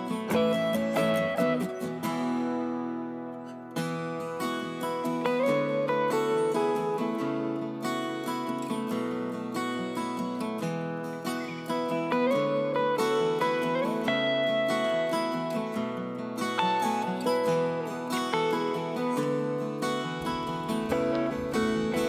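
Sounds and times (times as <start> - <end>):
acoustic guitar plucked chords: 0.0 - 22.0.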